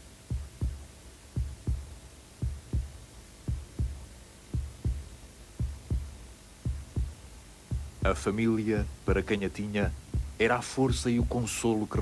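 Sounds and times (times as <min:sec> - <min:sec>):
slow heartbeat thumps: 0:00.1 - 0:12.0.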